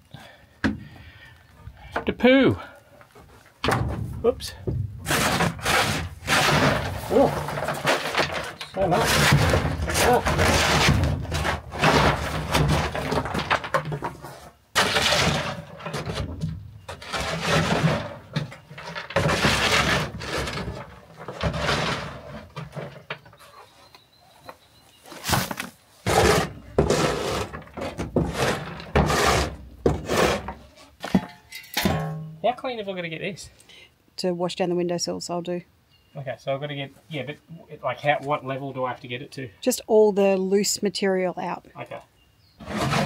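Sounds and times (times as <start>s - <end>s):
plastic shovel scraping wooden floor: 4.2s - 23.7s, 25.1s - 31.3s, 42.6s - 43.0s.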